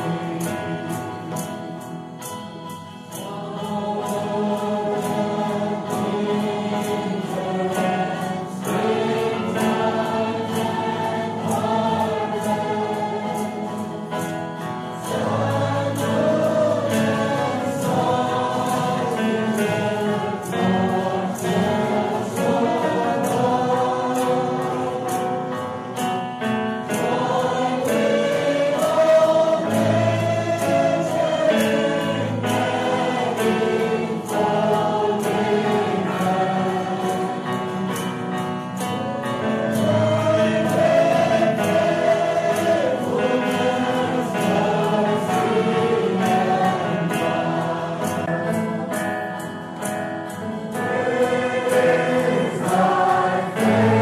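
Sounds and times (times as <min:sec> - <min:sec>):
choir singing a hymn: 0:00.0 - 0:54.0
musical accompaniment: 0:00.0 - 0:54.0.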